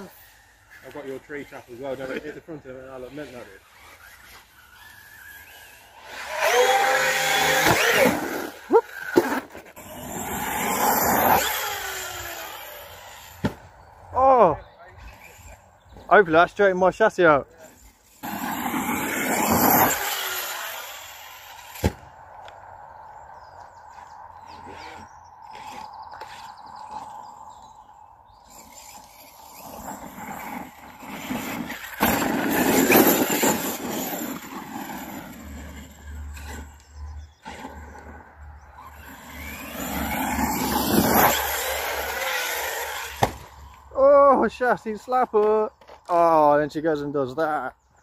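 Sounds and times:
rc car motors whining: 0.0s - 16.7s, 17.5s - 44.6s.

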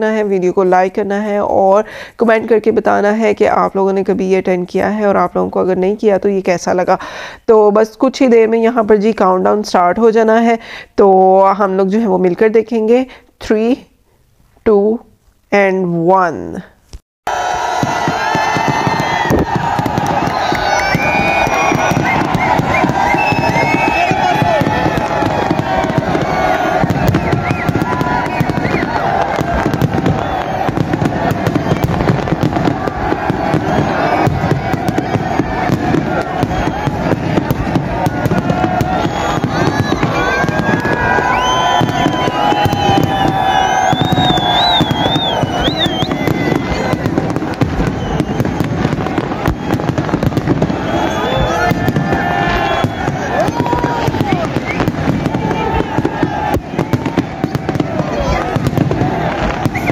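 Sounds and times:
crowd chatter and shouts: 17.3s - 59.9s
fireworks bangs and crackles: 17.6s - 59.9s.

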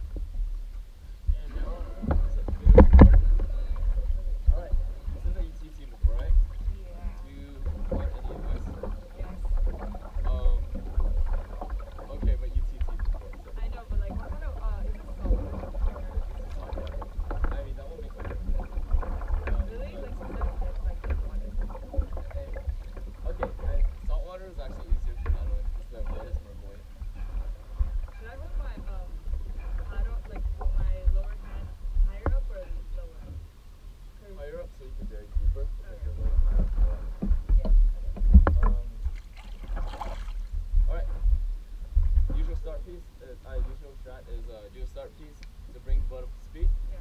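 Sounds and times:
low rumble on hull: 0.0s - 47.0s
paddles splashing through water: 0.0s - 47.0s.

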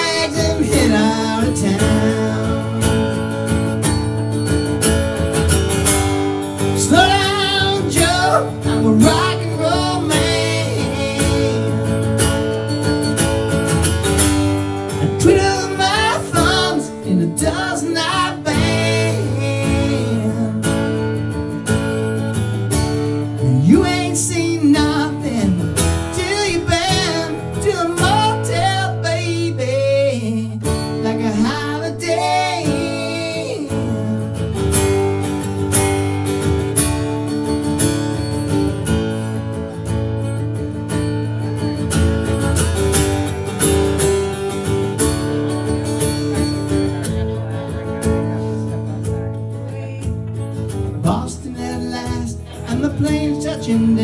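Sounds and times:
man singing: 0.0s - 3.4s, 6.7s - 12.2s, 14.9s - 21.0s, 23.4s - 34.6s, 50.9s - 54.0s
acoustic guitar strumming: 0.0s - 54.0s.

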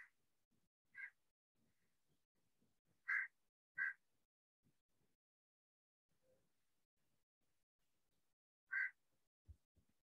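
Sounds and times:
harsh bird calls: 3.1s - 4.0s, 8.7s - 9.0s.

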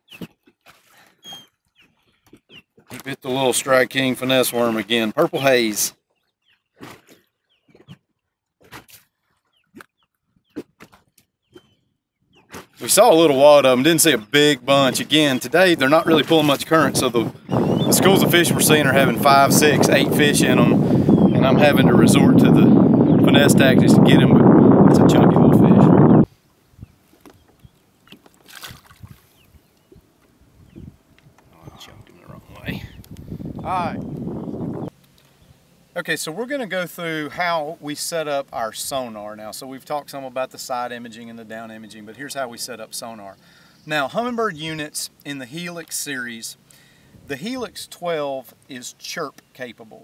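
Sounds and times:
water lapping against boat hull: 6.0s - 13.1s, 27.2s - 30.4s
fish splashing into water: 28.4s - 29.3s.

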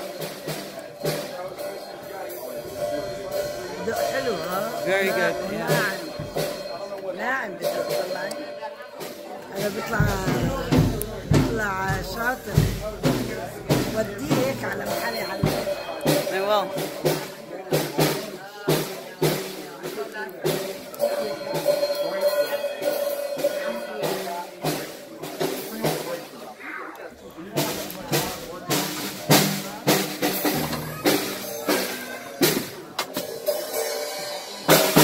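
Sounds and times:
child playing drum kit: 0.0s - 26.4s, 27.3s - 35.0s.

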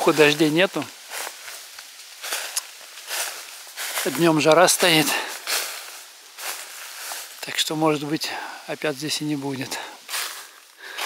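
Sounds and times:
footsteps through dry leaves: 0.0s - 11.0s.

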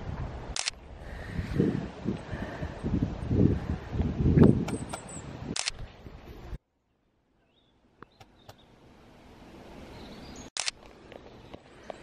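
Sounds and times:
wind on microphone: 0.0s - 6.6s
camera handling noise: 0.5s - 0.8s, 4.6s - 5.8s, 10.6s - 11.0s
camera double click: 4.6s - 5.8s, 10.6s - 10.8s.

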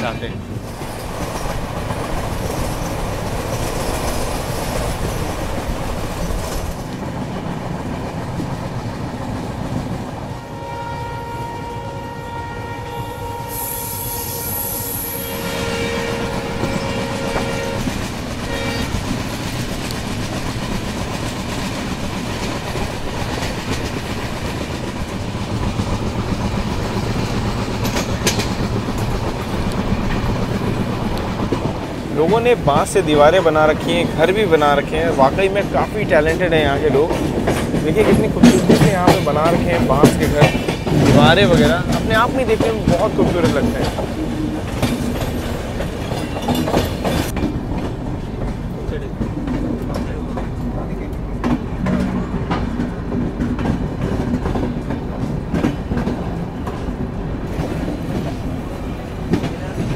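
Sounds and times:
train wheels rumbling on track: 0.0s - 59.9s
locomotive horn: 10.3s - 19.1s.

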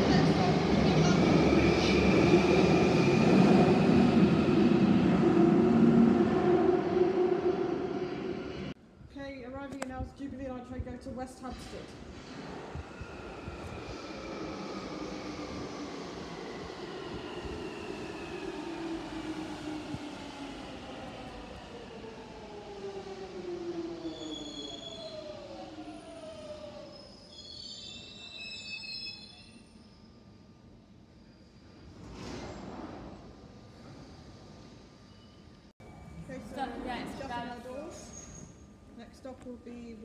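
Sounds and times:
brake and wheel squeals: 26.8s - 30.3s, 35.0s - 36.2s, 38.0s - 38.6s.

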